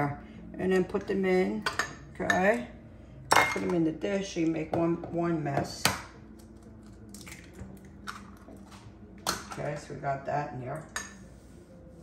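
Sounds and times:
eggshell crackling: 6.4 - 8.8.

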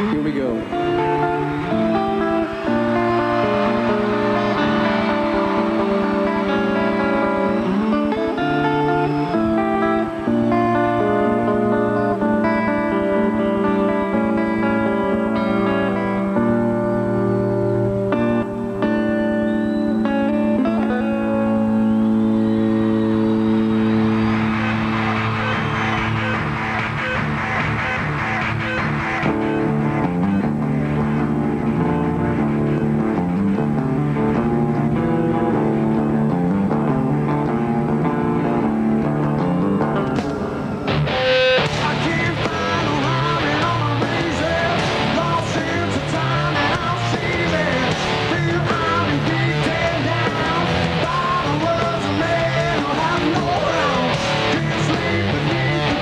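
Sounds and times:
vocals: 0.0 - 10.6, 41.6 - 56.0
rhythmic riff with bass: 0.0 - 19.3, 20.1 - 56.0
electric guitar ringing notes: 0.0 - 56.0
full rock band heavy hits: 1.2 - 10.6, 22.8 - 56.0.

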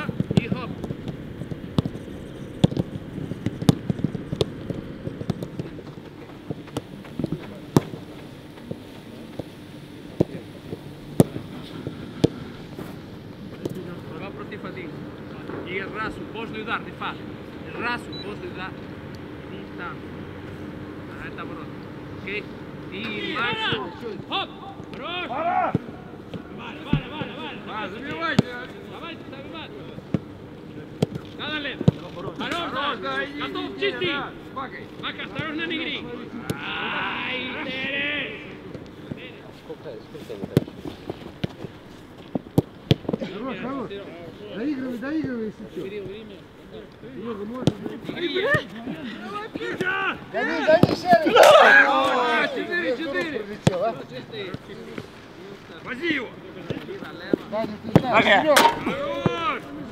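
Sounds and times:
footballs being kicked: 0.0 - 9.5
players shouting: 22.9 - 28.6, 35.2 - 38.7, 48.2 - 53.8, 58.0 - 59.9.

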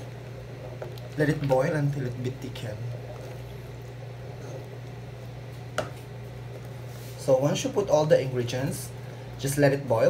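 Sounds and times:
wooden spoon stirring soup: 0.0 - 7.2
steady low hum: 0.0 - 10.0.

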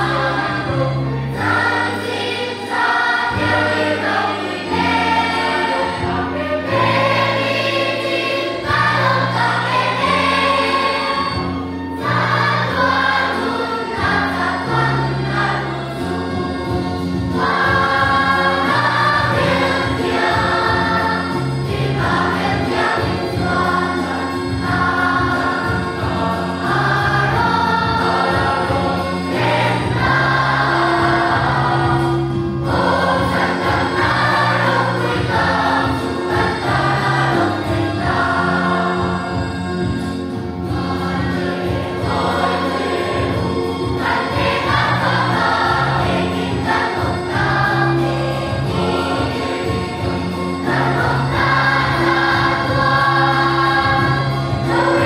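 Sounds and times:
children's choir singing: 0.0 - 55.0.

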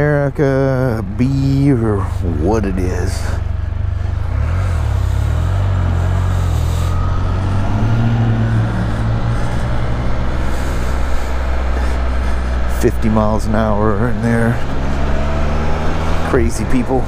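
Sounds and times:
motorcycle engine accelerating: 0.0 - 17.0
wind and road noise: 0.0 - 17.0.

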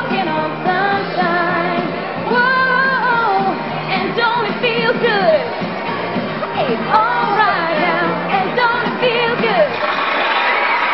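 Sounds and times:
woman singing: 0.0 - 5.5, 6.6 - 9.8
pop backing music: 0.0 - 10.9.

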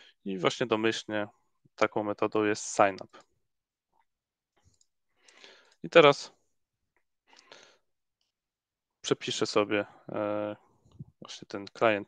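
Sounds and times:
man speaking: 0.3 - 3.2, 5.8 - 6.4, 9.0 - 10.6, 11.2 - 12.0.

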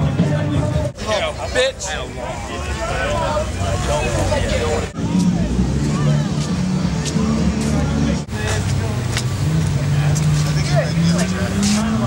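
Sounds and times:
people talking: 0.0 - 12.0
car engine idling: 0.4 - 12.0.

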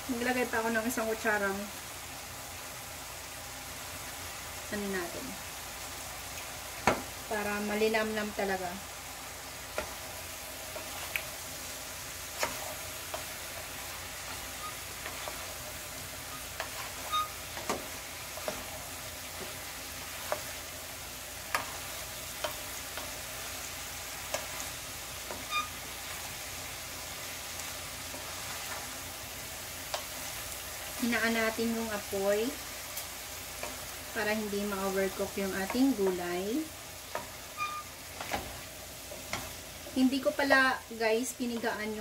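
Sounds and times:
food sizzling in a frying pan: 0.0 - 42.0
wooden spatula knocking on pan: 6.8 - 7.1.

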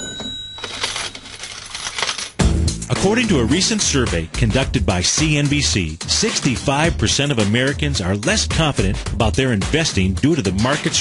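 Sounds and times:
coins clinking and spilling: 0.0 - 2.4.

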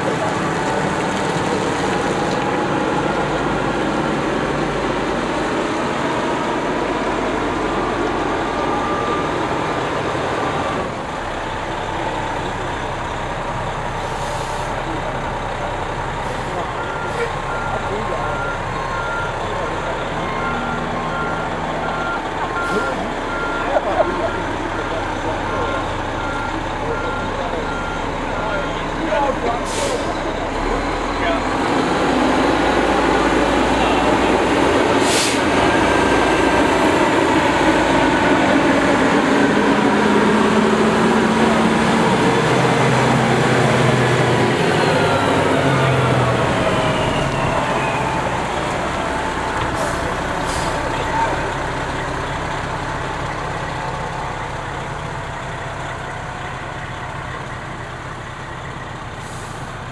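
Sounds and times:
diesel truck engine: 0.0 - 59.9
reversing alarm beeping: 8.2 - 11.0, 16.6 - 28.8
brief hisses: 35.0 - 35.4.

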